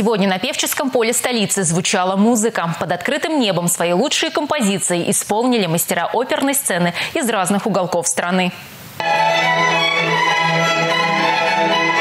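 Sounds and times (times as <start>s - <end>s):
violin playing long bowed notes: 9.0s - 12.0s.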